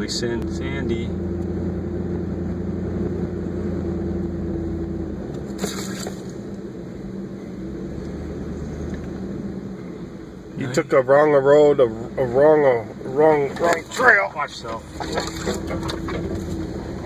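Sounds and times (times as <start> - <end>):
vehicle engine running: 0.0 - 17.0.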